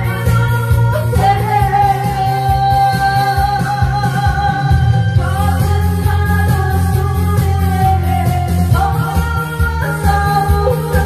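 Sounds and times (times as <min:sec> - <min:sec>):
backing music with bass beat: 0:00.0 - 0:11.0
woman singing: 0:00.0 - 0:11.0.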